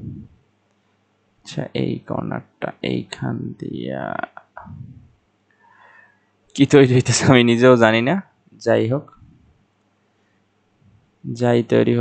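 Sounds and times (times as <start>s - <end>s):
man's drawn-out vocal sound: 1.5s - 5.0s.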